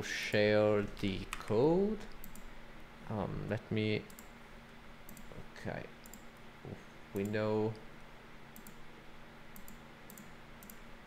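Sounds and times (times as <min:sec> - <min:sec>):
faint computer clicks: 0:01.2 - 0:02.5, 0:04.1 - 0:04.3, 0:06.0 - 0:06.4, 0:08.6 - 0:08.8, 0:09.5 - 0:10.8.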